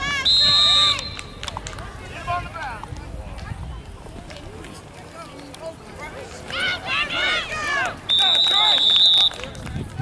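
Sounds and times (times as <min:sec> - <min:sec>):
spectators' voices: 0:00.0 - 0:10.0
referee's whistle blast: 0:08.1 - 0:09.4.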